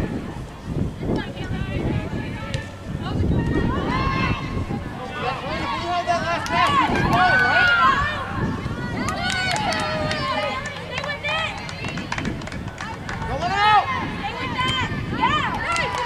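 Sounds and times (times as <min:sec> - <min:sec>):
high voices shouting: 0:02.0 - 0:12.2, 0:12.8 - 0:16.0.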